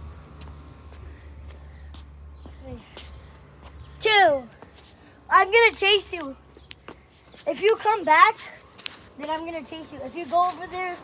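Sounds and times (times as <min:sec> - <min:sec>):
child speaking: 0:02.6 - 0:03.1, 0:04.0 - 0:04.6, 0:05.2 - 0:06.4, 0:07.4 - 0:08.6, 0:09.2 - 0:11.0.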